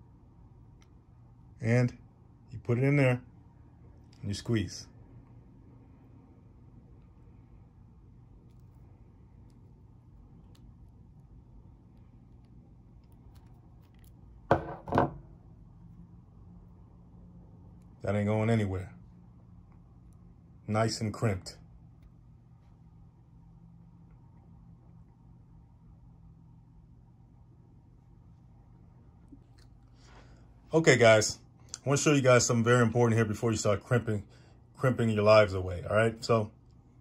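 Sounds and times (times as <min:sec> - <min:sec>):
low room hum: 0:00.0 - 0:37.0.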